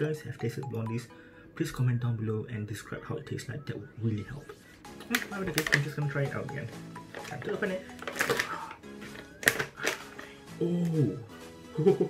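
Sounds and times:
background music: 0.0 - 12.0
snack bag tearing open: 7.2 - 10.4.

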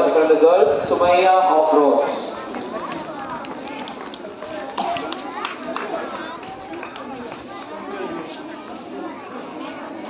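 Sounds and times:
background voices chattering: 0.0 - 10.0.

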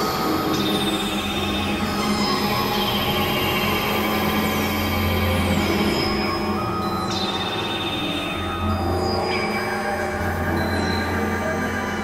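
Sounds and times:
electronic synthesizer drone: 0.0 - 12.0.

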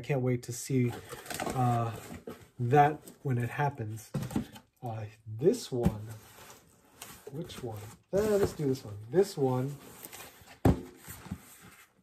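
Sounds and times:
cardboard box thump: 10.6 - 11.1.

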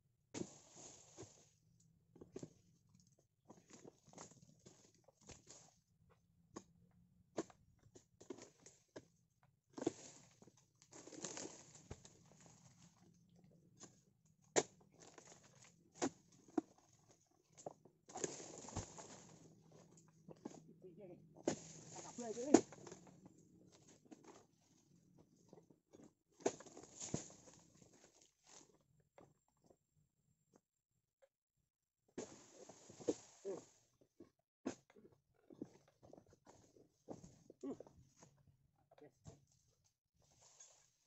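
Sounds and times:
rustling and crunching undergrowth: 9.8 - 13.1, 14.6 - 20.7, 21.3 - 25.6, 26.4 - 28.7.

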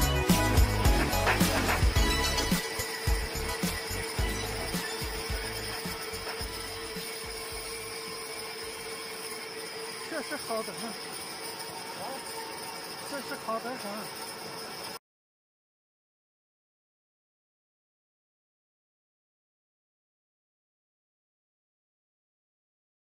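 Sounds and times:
background music: 0.0 - 7.9
metal lathe humming: 0.0 - 15.0.

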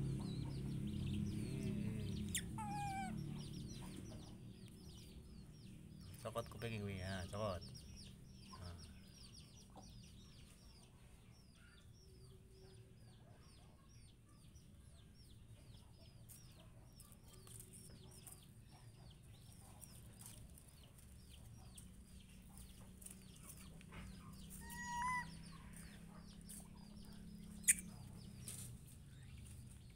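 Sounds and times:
bird chirping: 0.0 - 29.9.

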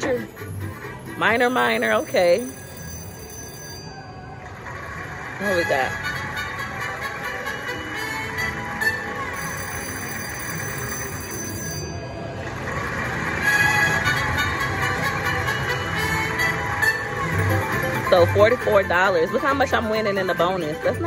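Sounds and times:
slot machine win music: 0.0 - 21.0
bell-like chimes: 9.3 - 12.4.

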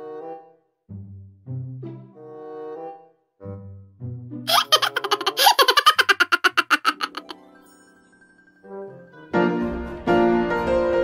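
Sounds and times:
person giggling: 4.5 - 7.3.

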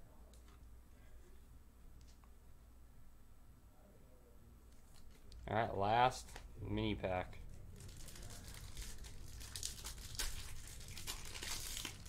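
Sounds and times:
foil wrapper crinkling and tearing: 7.5 - 12.0.

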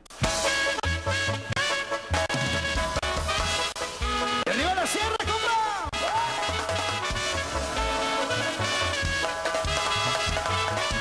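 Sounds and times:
band playing instrumental: 0.0 - 11.0
saxophone lines: 5.9 - 11.0
low bass beat: 6.0 - 11.0.

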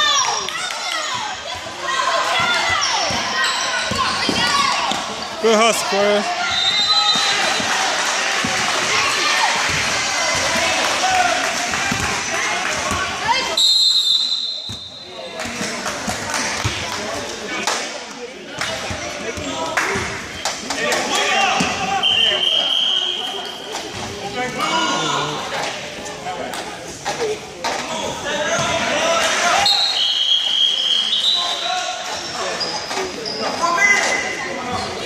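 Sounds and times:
spectators talking and shouting: 0.0 - 35.0
referee's whistle: 6.4 - 7.6, 13.6 - 15.1, 22.0 - 23.6, 29.6 - 31.8.

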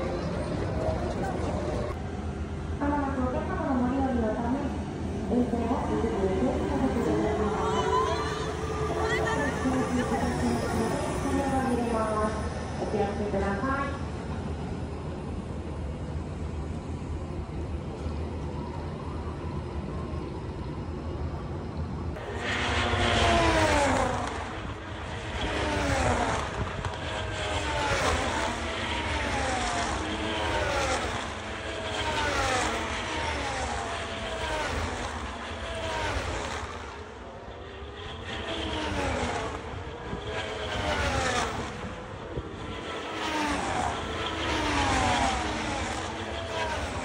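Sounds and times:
racing car engines whining past: 4.1 - 14.9, 22.2 - 47.0.

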